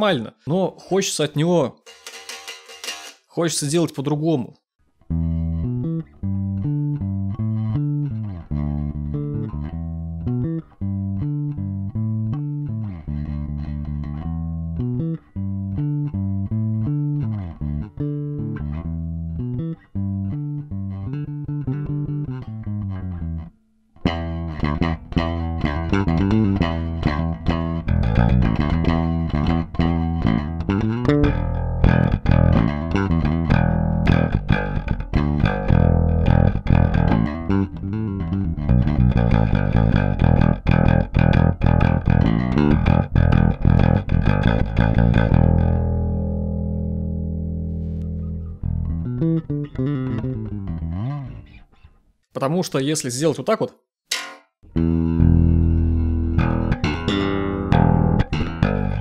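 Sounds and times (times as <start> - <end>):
electric bass plucked notes: 5.0 - 51.9, 54.6 - 59.0.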